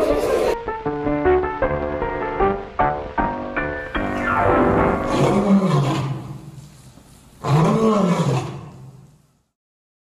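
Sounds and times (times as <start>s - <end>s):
tiger roaring: 4.9s - 6.4s, 7.4s - 9.0s.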